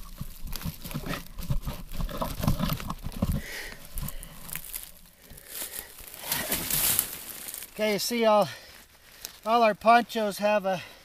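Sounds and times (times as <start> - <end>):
dry leaves crackling: 0.0 - 10.2
poncho rustling and crinkling: 0.0 - 10.2.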